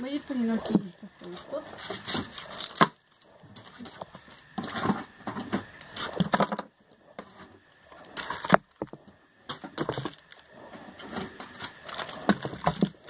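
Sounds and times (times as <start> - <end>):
plastic bag crinkling: 11.8 - 13.0.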